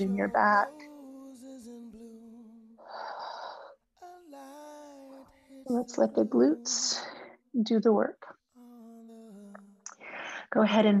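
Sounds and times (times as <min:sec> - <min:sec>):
breathy exhale: 0:02.8 - 0:03.8, 0:10.0 - 0:10.5.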